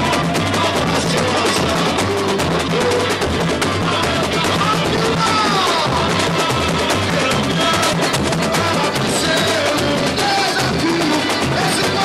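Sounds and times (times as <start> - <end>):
bass drum beats: 0.0 - 12.0
samba drums playing: 0.0 - 12.0.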